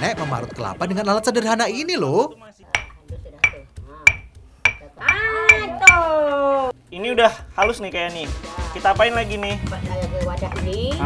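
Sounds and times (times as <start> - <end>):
pestle striking stone mortar: 2.7 - 6.1, 7.6 - 7.8.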